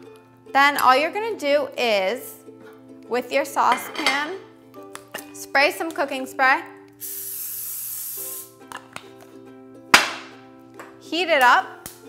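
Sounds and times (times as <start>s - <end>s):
aerosol spray hissing: 7.0s - 8.6s.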